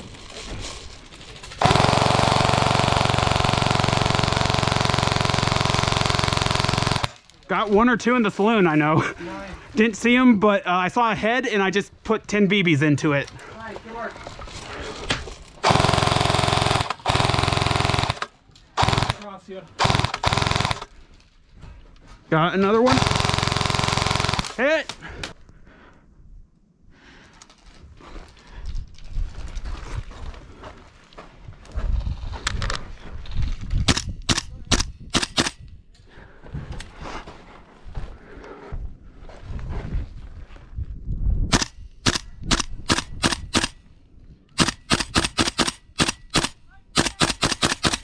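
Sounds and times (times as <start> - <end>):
airsoft rifle shots: 15.6 - 20.9, 22.8 - 24.8, 33.9 - 35.6, 41.5 - 43.8, 44.6 - 48.0.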